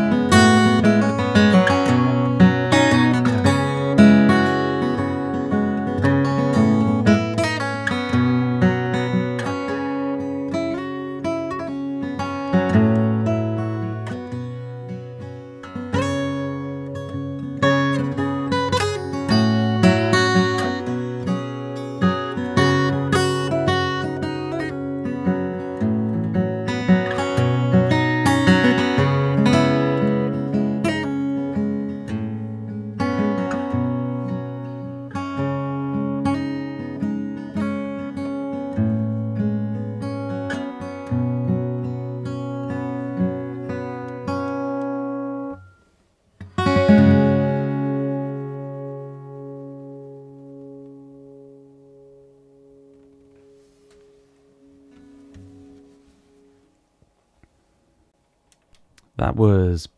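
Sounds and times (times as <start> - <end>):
fingerpicked acoustic guitar: 0.0 - 59.3.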